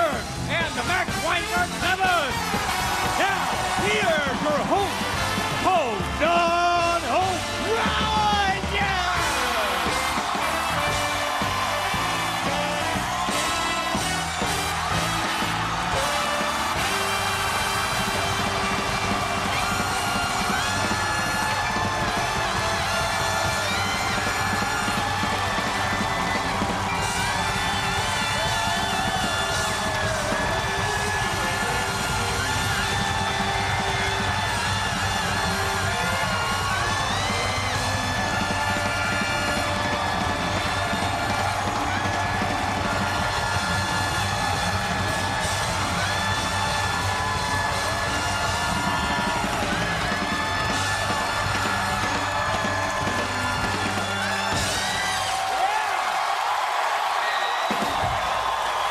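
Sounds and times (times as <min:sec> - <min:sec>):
live band playing with drums: 0:00.0 - 0:55.6
audience cheering and whooping: 0:00.0 - 0:58.9.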